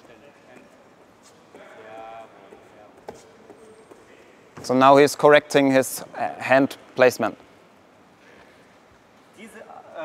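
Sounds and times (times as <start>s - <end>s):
distant voices in a hall: 0.0s - 10.0s.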